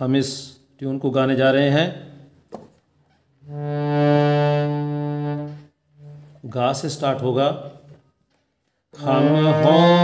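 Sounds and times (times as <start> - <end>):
harmonium note: 3.4 - 6.6, 9.0 - 10.0.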